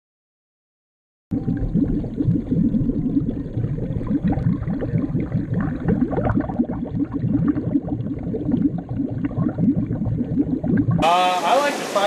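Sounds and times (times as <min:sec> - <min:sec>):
underwater bubbling and gurgling: 0:01.3 - 0:11.1.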